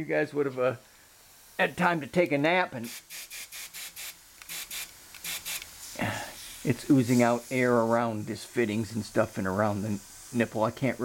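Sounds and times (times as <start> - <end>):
compressed air hissing in bursts: 0.6 - 11.0.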